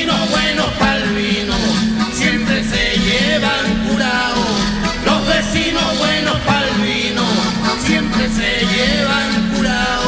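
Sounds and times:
accordion: 0:00.0 - 0:10.0
acoustic guitar: 0:00.0 - 0:10.0
man singing: 0:00.0 - 0:10.0.

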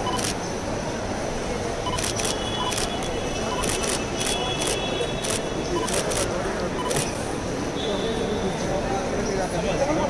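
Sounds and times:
murmur of crowd voices: 0:00.0 - 0:10.0
camera shutters clicking: 0:01.9 - 0:03.0, 0:03.6 - 0:06.3.

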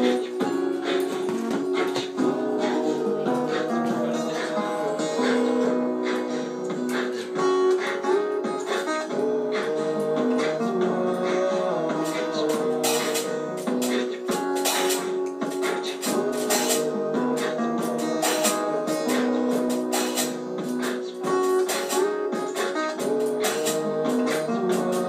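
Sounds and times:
looped guitar music: 0:00.0 - 0:25.0.

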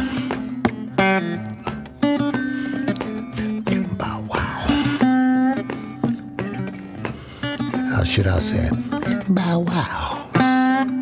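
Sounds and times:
acoustic blues guitar: 0:00.0 - 0:11.0
person singing: 0:03.8 - 0:05.2.

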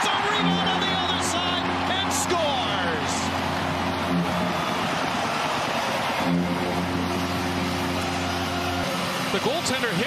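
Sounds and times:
arena goal horn blasts: 0:00.0 - 0:08.7
crowd cheering: 0:00.0 - 0:10.0.

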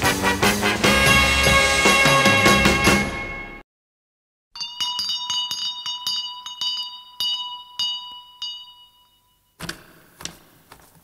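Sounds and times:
call bell ringing rapidly: 0:04.6 - 0:09.6.

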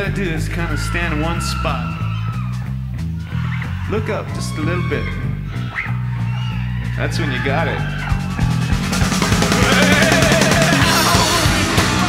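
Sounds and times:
live rock band playing: 0:06.6 - 0:12.0.

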